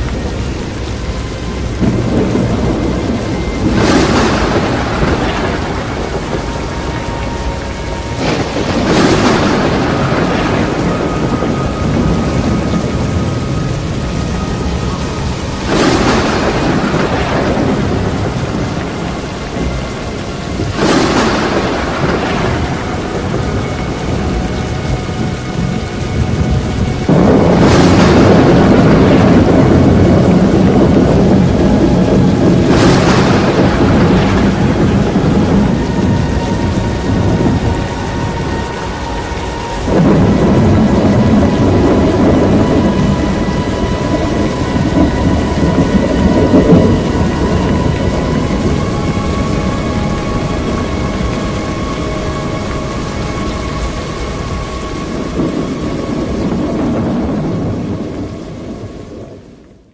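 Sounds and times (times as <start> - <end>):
heavy rain: 0.0 - 59.9
rolling thunderclaps: 0.0 - 59.9.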